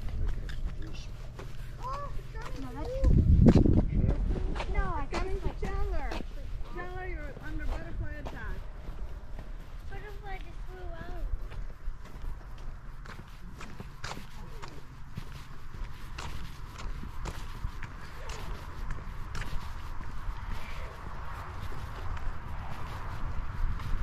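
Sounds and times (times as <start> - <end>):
voices: 0.0 - 8.8, 9.8 - 11.7
footsteps on concrete: 0.0 - 24.0
steady low rumble: 0.0 - 24.0.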